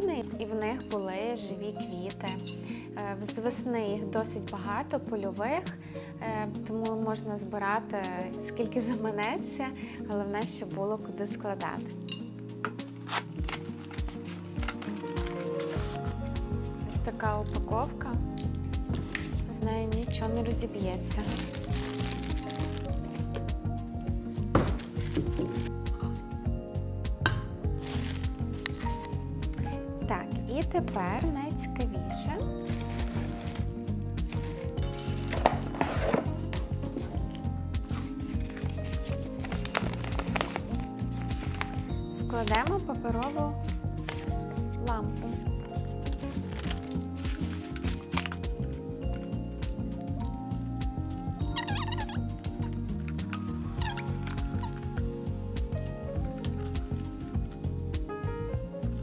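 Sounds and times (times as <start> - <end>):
background music: 0.0 - 59.0
paper and cardboard rustling: 12.8 - 16.2, 21.1 - 23.4, 24.6 - 25.7, 27.8 - 29.0, 32.6 - 44.4, 46.1 - 48.5
box knocks: 24.5 - 25.6
cardboard box scraping and knocking: 34.3 - 37.2.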